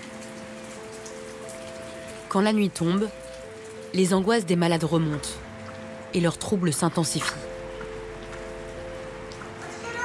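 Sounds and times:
rain falling steadily: 0:00.0 - 0:10.0
soft sustained music notes: 0:00.0 - 0:10.0.

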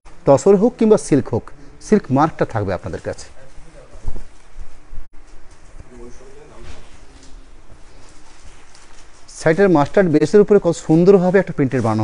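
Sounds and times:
fabric being shaken and handled: 0:02.8 - 0:10.2.

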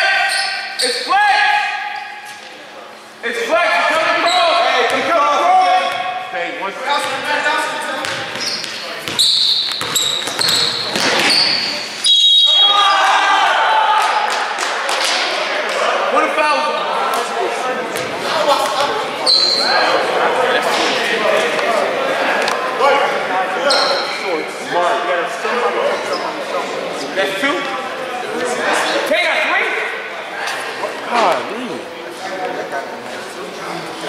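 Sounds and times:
voices in a reverberant gym: 0:00.0 - 0:34.0
sneakers squeaking on gym floor: 0:00.2 - 0:01.1, 0:07.9 - 0:12.9, 0:19.2 - 0:19.9, 0:23.6 - 0:24.3, 0:25.9 - 0:26.4
basketball dribbling: 0:08.0 - 0:11.6
referee's whistle: 0:08.4 - 0:13.1.

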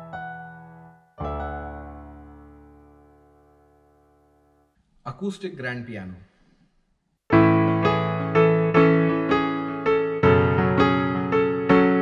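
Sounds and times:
piano chord and note ringing: 0:00.0 - 0:04.6, 0:07.3 - 0:12.0.

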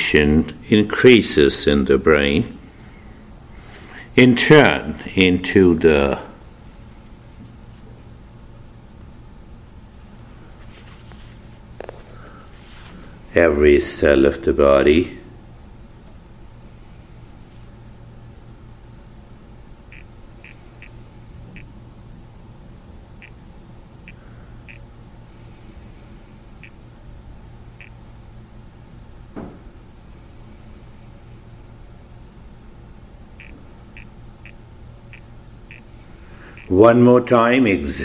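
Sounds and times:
steady low hum: 0:00.0 - 0:38.0.

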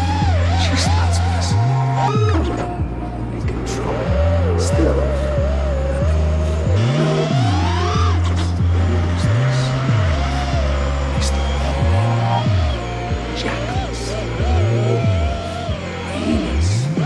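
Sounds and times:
electronic music with bending synth: 0:00.0 - 0:17.0.

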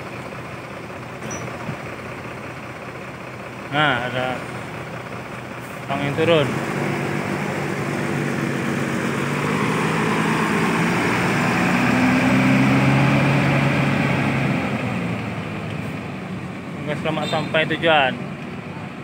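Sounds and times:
bus diesel engine driving past: 0:00.0 - 0:19.0.

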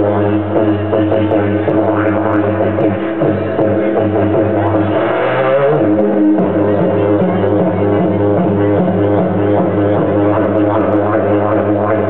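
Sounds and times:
didgeridoo drone: 0:00.0 - 0:12.0.

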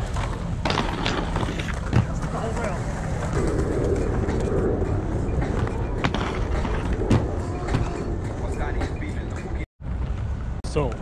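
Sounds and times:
skate wheels rolling on concrete: 0:00.0 - 0:08.2.

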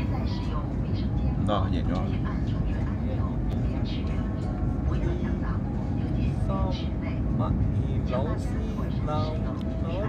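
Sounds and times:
faint voices: 0:00.0 - 0:10.0
train carriage rumble and hiss: 0:00.0 - 0:10.0.

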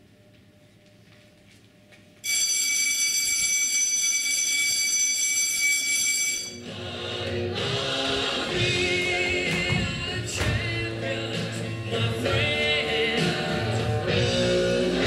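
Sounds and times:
music with singing: 0:06.6 - 0:15.0.

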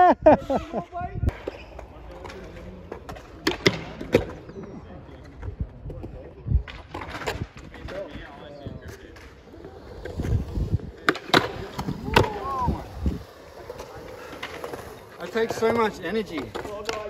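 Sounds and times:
skateboard wheels rolling on concrete: 0:00.0 - 0:17.0
skateboard clacks on ground: 0:01.3 - 0:04.5, 0:05.2 - 0:17.0.

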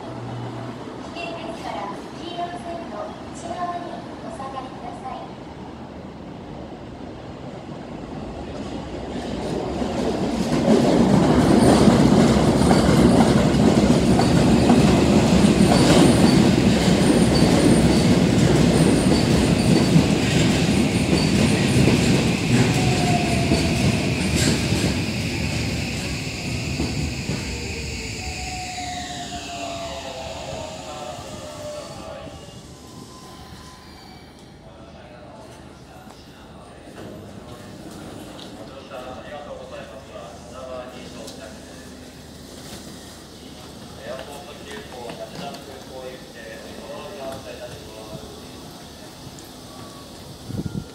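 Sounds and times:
falling tones of slowing train: 0:00.0 - 0:50.9
train wheel-on-rail rumble: 0:00.0 - 0:50.9.

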